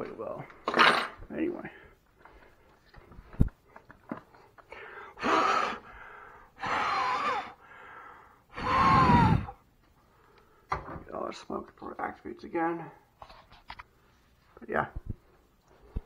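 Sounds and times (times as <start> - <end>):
person puffing air: 5.2 - 7.6, 8.6 - 9.6.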